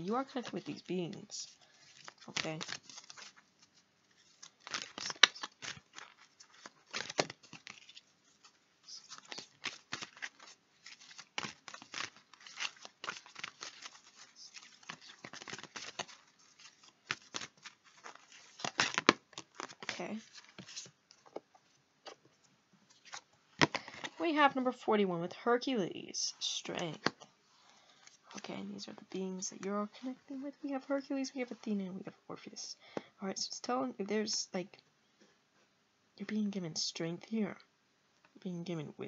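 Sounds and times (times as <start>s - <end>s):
cards being shuffled: 0.0s - 22.3s, 22.9s - 24.2s.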